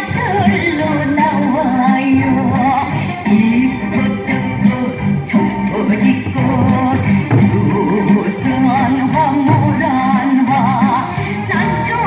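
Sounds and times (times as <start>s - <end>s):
person singing with vibrato: 0.0s - 12.0s.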